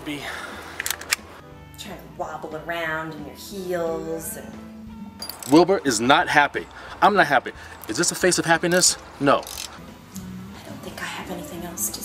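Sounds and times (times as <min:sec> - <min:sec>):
music: 0:00.0 - 0:12.0
sharp clicks: 0:00.8 - 0:01.2, 0:08.6 - 0:09.8.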